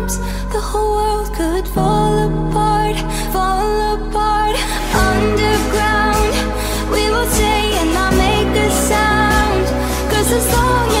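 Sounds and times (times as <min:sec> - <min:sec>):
high female vocal singing: 0:00.0 - 0:11.0
synth backing: 0:00.0 - 0:11.0.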